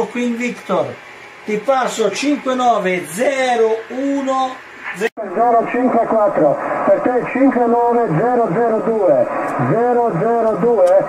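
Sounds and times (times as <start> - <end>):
man speaking: 0.0 - 11.0
voice over radio speaker: 3.0 - 11.0.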